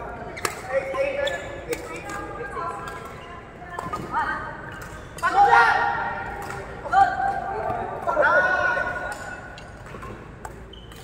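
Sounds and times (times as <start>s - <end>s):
shoes squeaking on court: 0.3s - 2.2s, 9.4s - 11.0s
rackets hitting shuttlecock: 6.2s - 8.2s.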